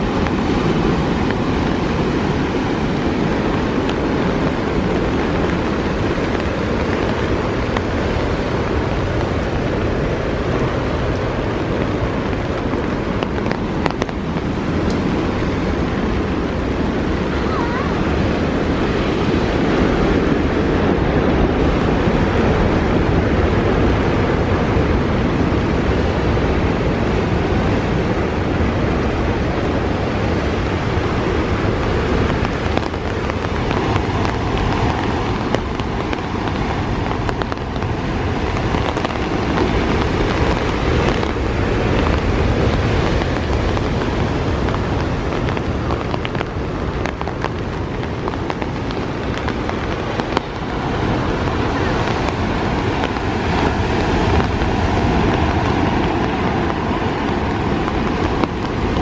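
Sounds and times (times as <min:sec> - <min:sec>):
heavy rain: 0:00.0 - 0:59.0
wind rumbling on microphone: 0:00.0 - 0:59.0.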